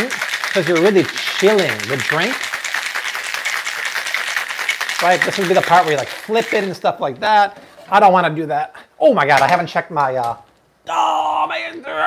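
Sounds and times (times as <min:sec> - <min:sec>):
ice rattling in cocktail shaker: 0:00.0 - 0:06.8.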